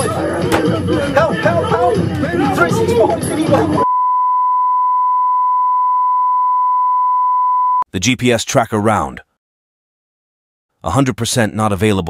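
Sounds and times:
high electronic beep tone: 0:03.8 - 0:07.8.

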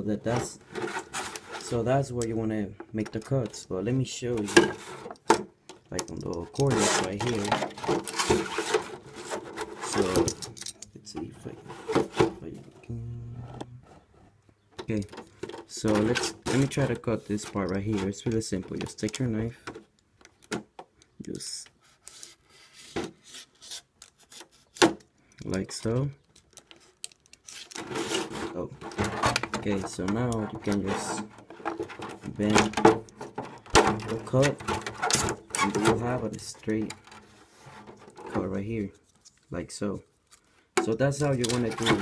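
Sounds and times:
stiff plastic scraping: 0:00.0 - 0:03.6, 0:04.2 - 0:20.7, 0:22.0 - 0:39.4, 0:40.3 - 0:42.0.

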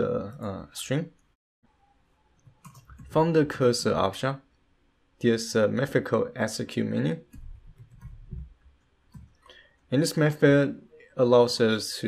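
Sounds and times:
soft keyboard keystrokes: 0:02.4 - 0:03.2, 0:07.3 - 0:09.4.

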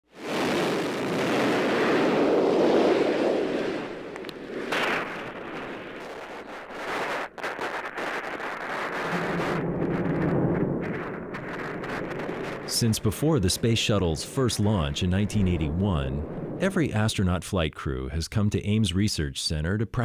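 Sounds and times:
rocket launch roar: 0:00.1 - 0:17.1.

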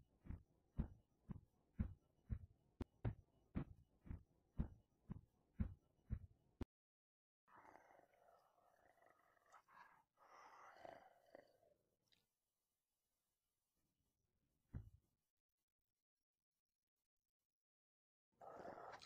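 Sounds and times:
wolf growling and snarling: 0:07.5 - 0:11.6, 0:18.4 - 0:19.0.

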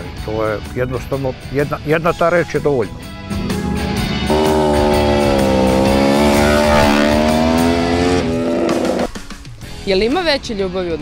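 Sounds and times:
background music: 0:00.0 - 0:11.0
motorcycle engine at high revs: 0:04.3 - 0:09.1.

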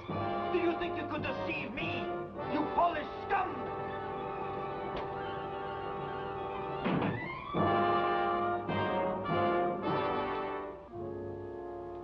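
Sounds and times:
dramatic orchestral music with brass: 0:00.0 - 0:12.0.

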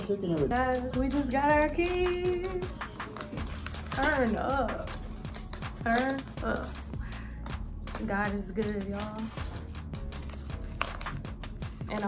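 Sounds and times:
background music: 0:00.0 - 0:12.0
metal keys clinking: 0:00.9 - 0:01.5, 0:02.7 - 0:12.0.

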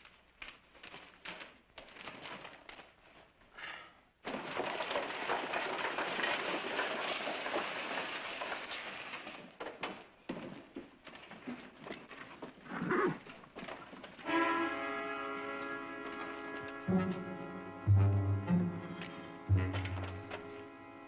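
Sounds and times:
stagecoach wheels and hooves clattering: 0:04.3 - 0:09.9, 0:10.5 - 0:17.8, 0:18.4 - 0:21.0
held music chord: 0:16.6 - 0:21.0.

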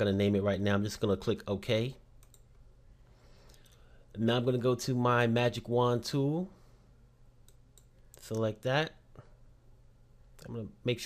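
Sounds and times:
low steady hum: 0:00.0 - 0:11.0
computer mouse clicks: 0:02.2 - 0:02.6, 0:07.4 - 0:08.4.

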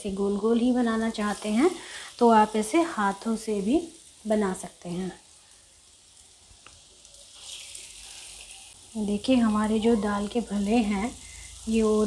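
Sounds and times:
hot oil sizzling: 0:00.0 - 0:12.0.

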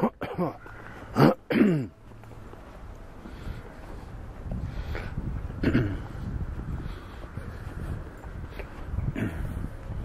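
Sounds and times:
man clearing throat and coughing: 0:00.0 - 0:00.6, 0:01.2 - 0:01.9, 0:05.6 - 0:06.1
faint street background: 0:00.0 - 0:10.0.

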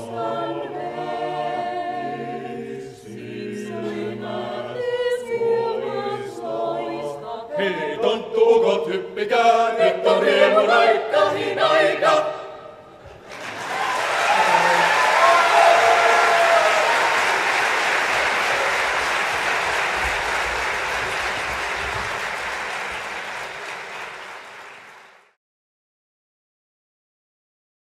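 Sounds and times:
audience applauding: 0:13.1 - 0:25.4.

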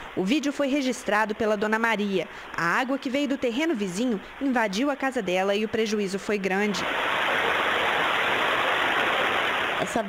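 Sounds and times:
muddy water rushing downhill: 0:00.0 - 0:10.0
woman speaking: 0:00.2 - 0:06.8, 0:09.8 - 0:10.0.

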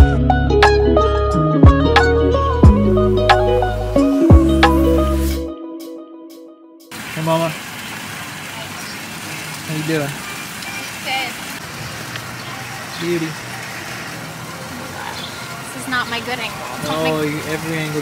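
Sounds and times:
music: 0:00.0 - 0:06.9
steady outdoor hiss: 0:06.9 - 0:18.0.

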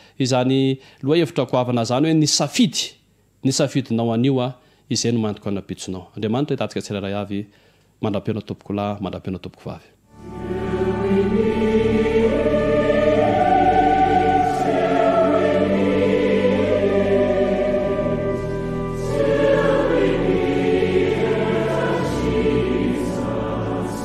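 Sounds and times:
choir singing held chords: 0:10.1 - 0:24.0
musical accompaniment: 0:10.1 - 0:24.0.

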